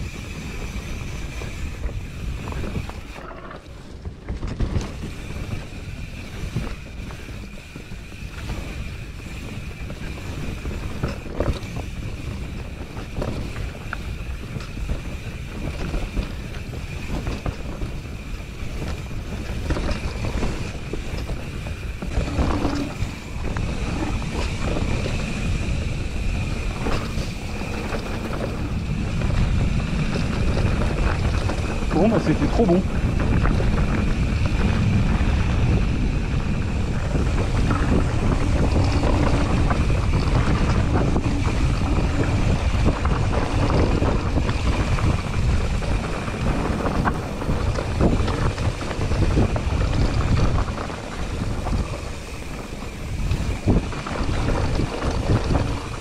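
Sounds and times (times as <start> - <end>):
bike rattling: 0.0 - 56.0
bike tyres rumbling on dirt: 0.0 - 56.0
wind noise on microphone: 0.0 - 56.0.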